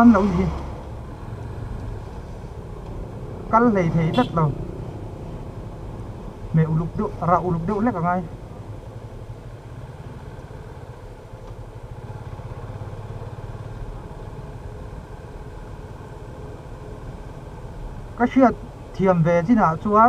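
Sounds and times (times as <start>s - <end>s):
road noise: 0.0s - 20.0s
motorcycle engine running: 3.0s - 17.9s.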